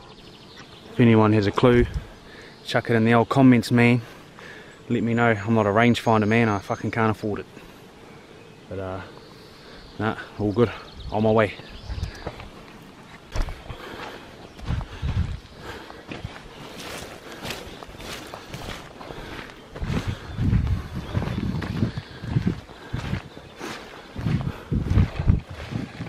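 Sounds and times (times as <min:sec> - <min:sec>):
footsteps on wet muddy ground: 0:11.7 - 0:26.0.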